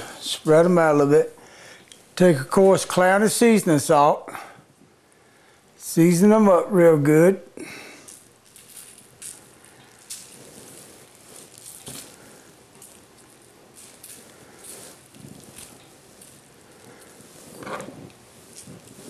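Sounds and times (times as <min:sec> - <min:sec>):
plastic wrap rustling and crinkling: 0:07.8 - 0:19.0.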